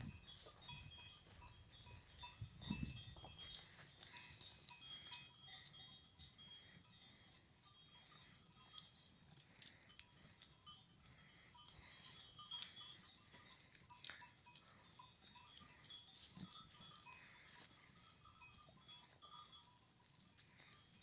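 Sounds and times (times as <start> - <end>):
goat bells clinking: 0.0 - 21.0.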